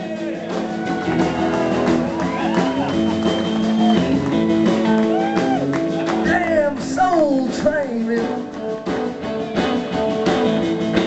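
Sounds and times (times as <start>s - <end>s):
live blues-rock band playing: 0.0s - 11.0s.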